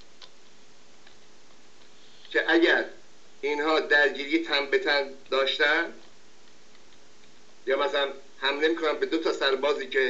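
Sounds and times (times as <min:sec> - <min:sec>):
faint ticks: 0:00.0 - 0:02.4, 0:06.0 - 0:07.4
low background hiss: 0:00.0 - 0:10.0.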